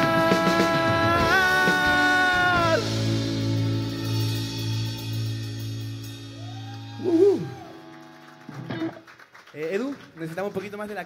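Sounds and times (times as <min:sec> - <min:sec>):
bass note: 0:00.0 - 0:07.6.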